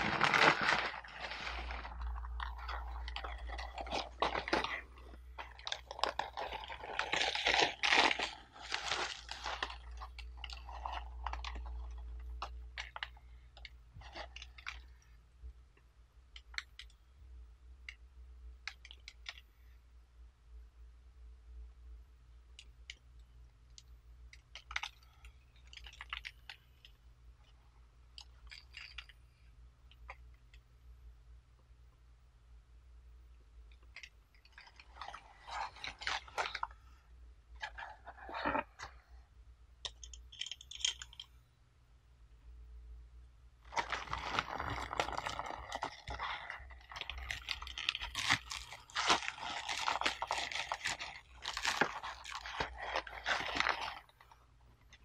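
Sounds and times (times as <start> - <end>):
tea cake and paper crackling: 0.0 - 14.9, 43.7 - 54.4
low steady hum: 0.0 - 55.0.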